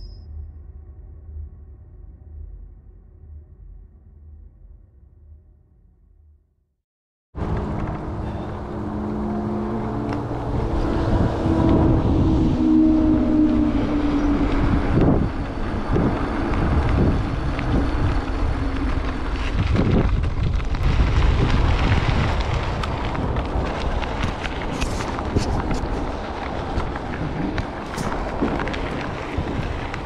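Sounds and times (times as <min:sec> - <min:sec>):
wind buffeting microphone: 0:07.4 - 0:30.0
gravel crunches and knocks: 0:15.0 - 0:30.0
tyres rolling on gravel: 0:15.8 - 0:30.0.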